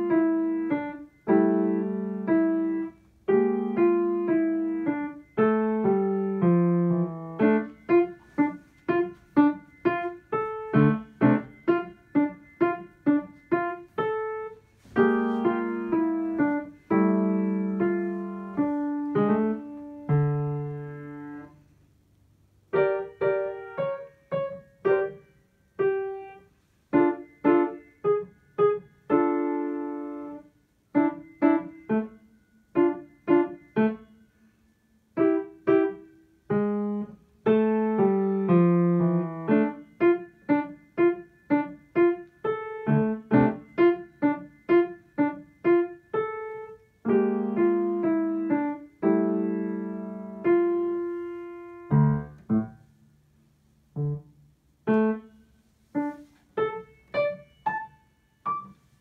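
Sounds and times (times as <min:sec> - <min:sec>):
child playing piano: 0:00.0 - 0:21.7, 0:22.5 - 0:53.0, 0:53.8 - 0:59.0.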